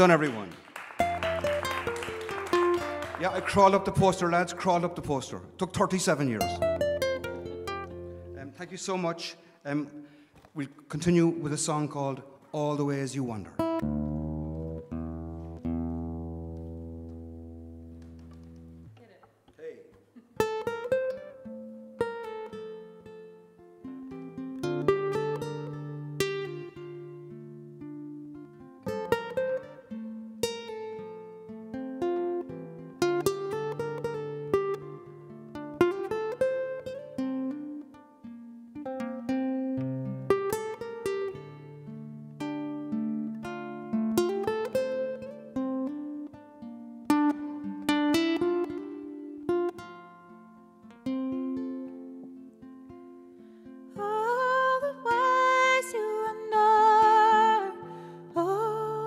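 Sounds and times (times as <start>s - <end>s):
fingerpicked acoustic guitar: 1.0s - 9.1s, 13.5s - 19.2s, 20.0s - 59.0s.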